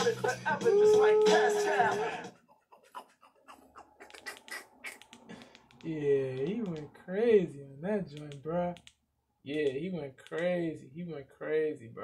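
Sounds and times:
remote buttons clicking: 4.1s - 6.9s, 8.1s - 10.6s.

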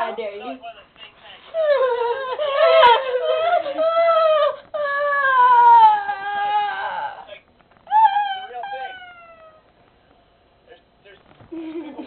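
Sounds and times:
girl whining: 1.6s - 7.3s, 7.9s - 9.7s.

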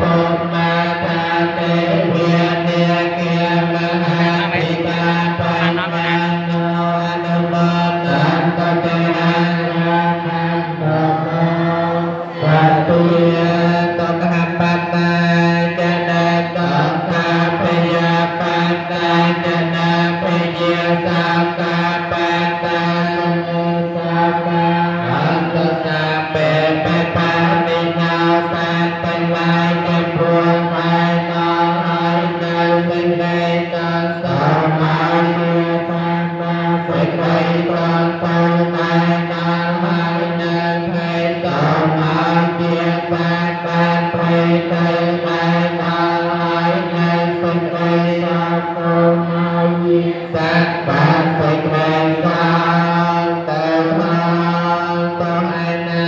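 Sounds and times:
voices chanting: 11.3s - 13.6s.

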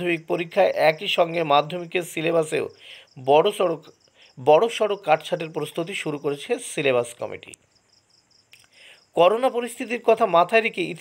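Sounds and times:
person reading aloud: 0.0s - 7.6s, 9.2s - 11.0s.

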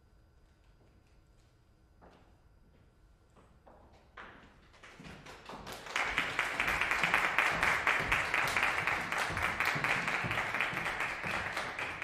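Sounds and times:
audience applause: 4.8s - 12.0s.

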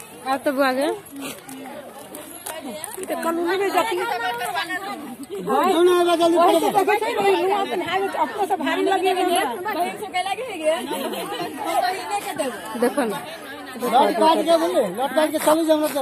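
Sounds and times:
women chattering: 0.0s - 16.0s.

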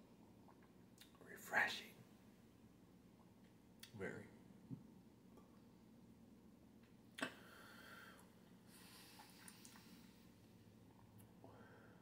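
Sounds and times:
man breathing out: 7.4s - 10.2s.

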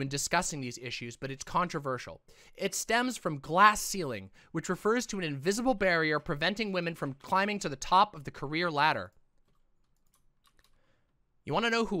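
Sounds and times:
computer keyboard clicks: 9.4s - 10.8s.

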